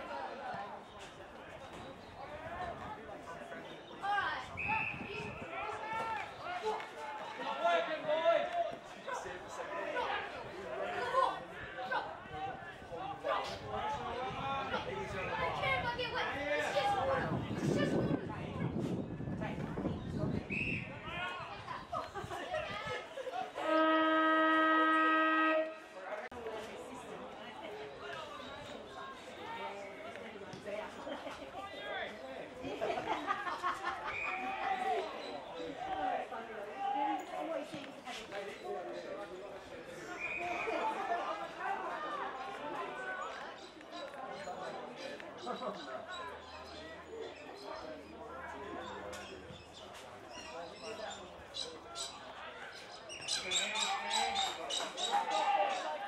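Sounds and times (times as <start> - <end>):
voices calling out: 19.7 - 56.0
long horn blast: 23.6 - 25.9.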